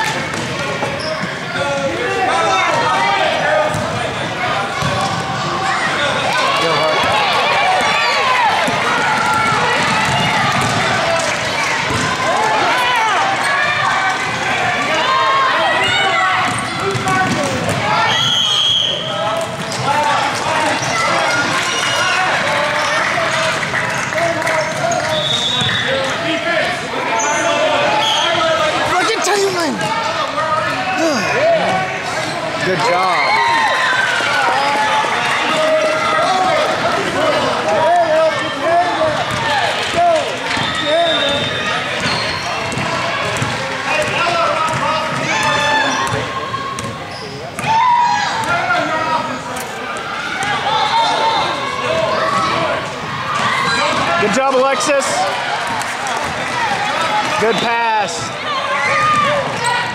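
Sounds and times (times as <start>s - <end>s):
people calling out: 27.1s - 38.3s.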